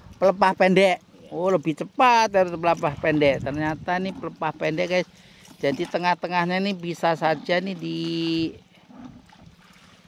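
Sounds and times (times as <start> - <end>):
water splashing and trickling: 0.0 - 10.0.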